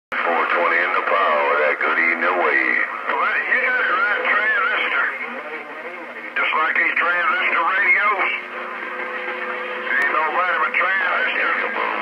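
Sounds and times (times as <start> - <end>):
voice over radio speaker: 0.2 - 8.4, 9.9 - 12.0.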